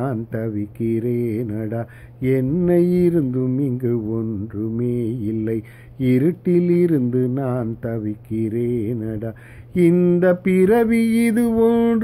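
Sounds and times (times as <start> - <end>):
man singing devotional song: 0.0 - 12.0.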